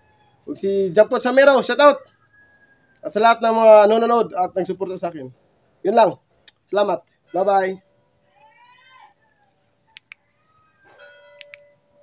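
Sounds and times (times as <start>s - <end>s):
faint animal calls: 7.8s - 11.6s
soft clicks: 10.0s - 10.2s, 11.4s - 11.6s.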